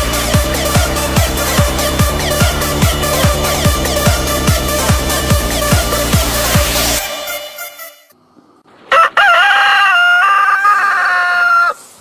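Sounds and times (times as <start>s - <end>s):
rooster crowing: 8.9s - 11.8s.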